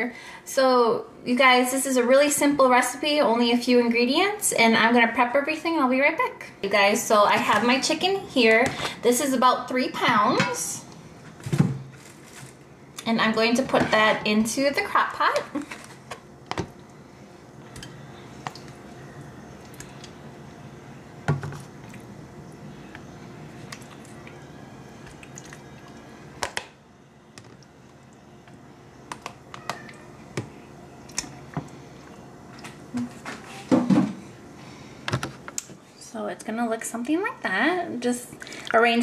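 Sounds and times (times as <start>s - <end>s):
faint room hum: 0.0s - 39.0s.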